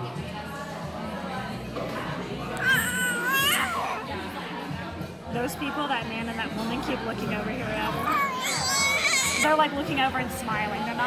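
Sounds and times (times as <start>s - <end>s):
restaurant chatter: 0.0s - 11.0s
baby squealing: 2.6s - 4.1s, 8.0s - 9.5s.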